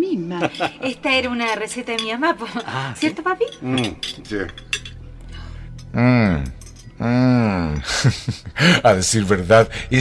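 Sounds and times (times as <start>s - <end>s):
cutlery clinking against plates: 0.4s - 5.0s.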